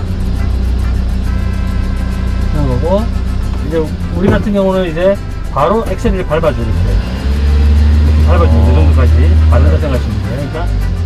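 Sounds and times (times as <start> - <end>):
background music: 0.0 - 11.0
truck engine running: 0.0 - 11.0.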